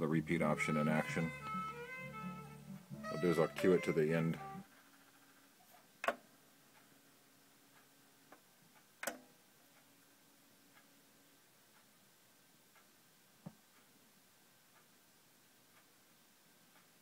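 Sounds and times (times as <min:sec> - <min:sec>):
light ticks: 0:07.7 - 0:09.9, 0:10.7 - 0:10.9, 0:12.7 - 0:13.9, 0:15.7 - 0:16.0, 0:16.7 - 0:17.0.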